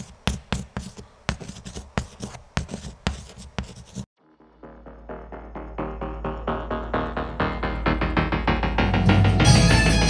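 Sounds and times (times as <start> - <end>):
pen scribbling: 0.0 - 4.1
low synth drone: 4.2 - 10.0
pulsing electronic music: 4.2 - 10.0.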